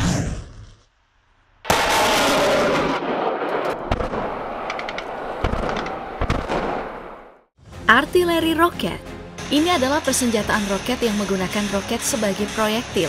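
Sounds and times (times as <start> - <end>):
rocket launcher roar: 1.7 - 7.2
sharp bangs: 1.7 - 7.5.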